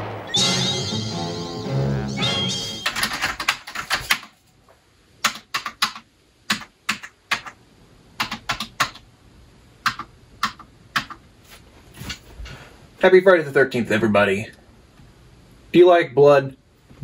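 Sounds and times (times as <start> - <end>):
film score music: 0.0 - 3.2
computer keyboard typing: 2.8 - 4.3, 5.2 - 7.6, 8.2 - 9.0, 9.8 - 11.2.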